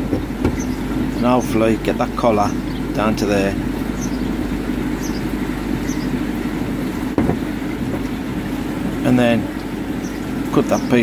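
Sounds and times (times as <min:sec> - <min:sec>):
low mechanical rumble: 0:00.0 - 0:11.0.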